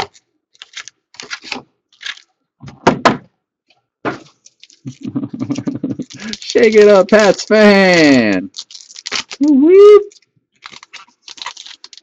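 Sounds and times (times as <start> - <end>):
foil wrappers crinkling: 0.0 - 2.3, 4.2 - 12.0.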